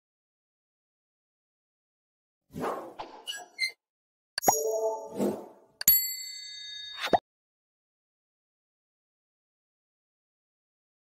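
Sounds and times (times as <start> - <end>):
notification bell ding: 4.4 - 5.2, 5.8 - 7.2.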